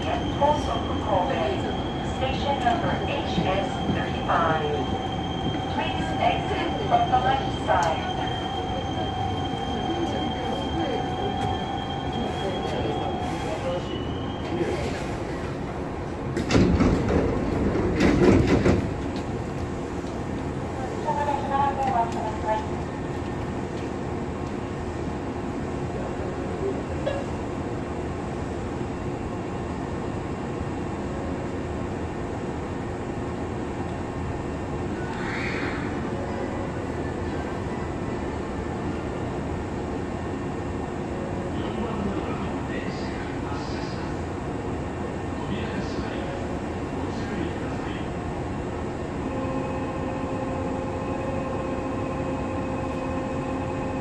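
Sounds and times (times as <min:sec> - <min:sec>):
train wheels rolling on rail: 0:00.0 - 0:26.8
train rattling: 0:00.0 - 0:28.5
thin steady whine: 0:49.2 - 0:54.0.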